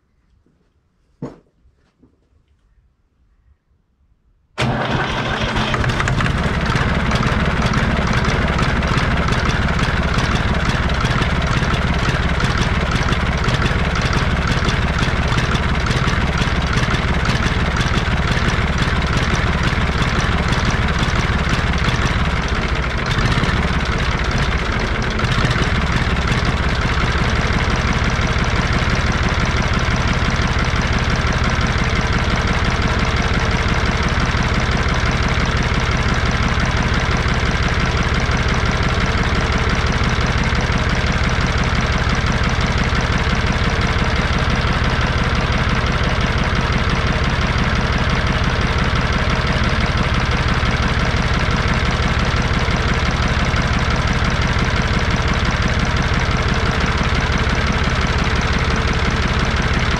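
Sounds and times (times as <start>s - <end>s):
tractor diesel engine idling: 4.6s - 59.9s.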